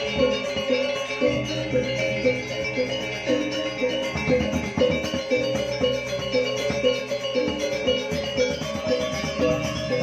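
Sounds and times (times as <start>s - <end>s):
gamelan ensemble playing: 0.0s - 10.0s.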